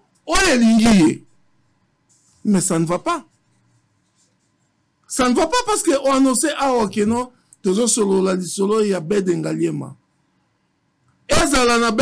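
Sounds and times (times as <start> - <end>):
faint room hum: 0.0 - 12.0
man speaking: 0.3 - 1.3, 2.4 - 3.3, 5.1 - 10.0, 11.3 - 12.0.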